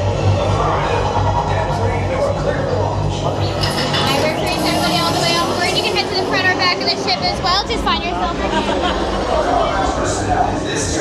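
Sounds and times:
crowd chatter: 0:00.0 - 0:11.0
low hum: 0:00.0 - 0:11.0.

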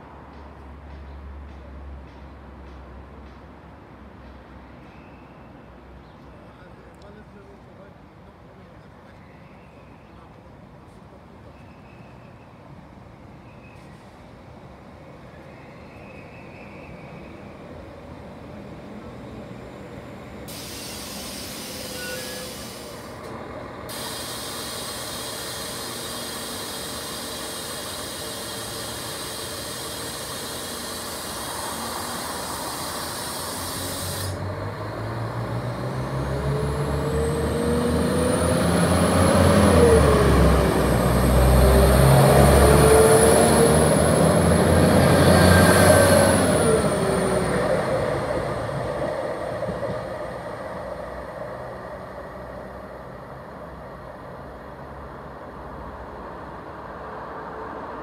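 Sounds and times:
diesel train pulling away: 0:11.0 - 0:58.0
steady high hiss: 0:23.9 - 0:34.4.

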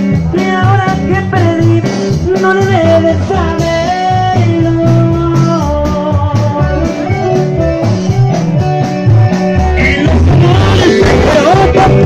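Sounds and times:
live band playing dance music: 0:00.0 - 0:12.0.

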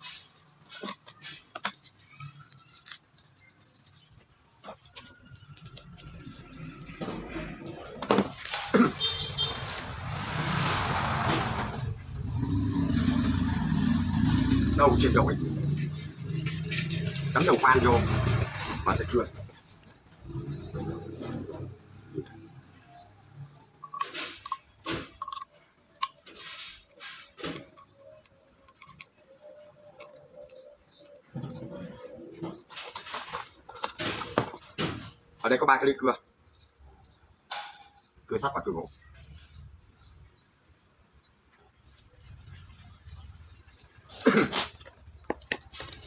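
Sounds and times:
vehicle engine hum: 0:00.6 - 0:24.1.

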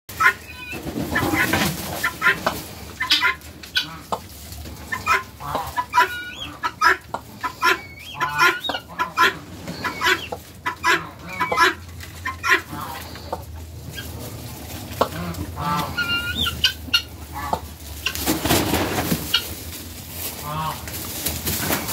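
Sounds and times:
fowl clucking: 0:00.1 - 0:21.9.

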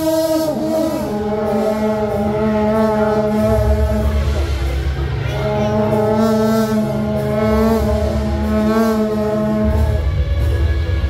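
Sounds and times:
brass horns blowing held notes: 0:00.0 - 0:11.0
low rumble: 0:00.0 - 0:11.0.

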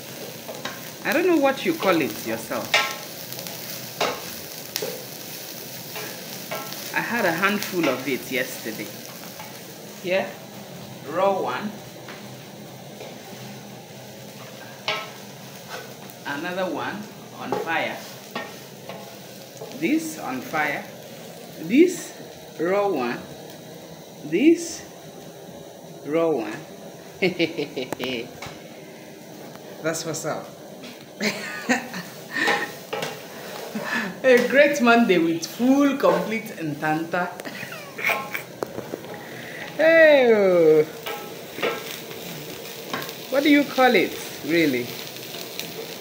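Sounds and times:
termites sizzling in a pot: 0:00.0 - 0:46.0.

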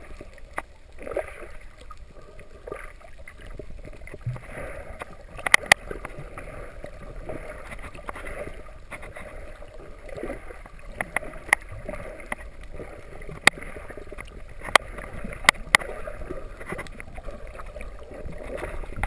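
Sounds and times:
underwater rush of water: 0:00.0 - 0:19.0
sharp clicks: 0:05.4 - 0:06.1.

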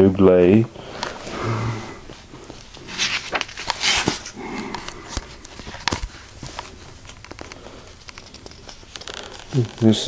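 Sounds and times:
paper pages turning and rustling: 0:02.1 - 0:10.0.

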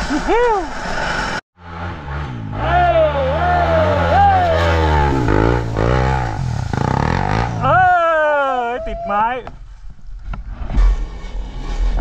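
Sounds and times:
dirt bike engines revving: 0:00.8 - 0:09.2.

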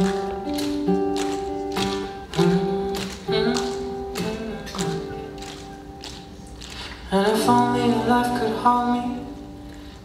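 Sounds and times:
acoustic guitar strumming chords: 0:00.0 - 0:10.0.

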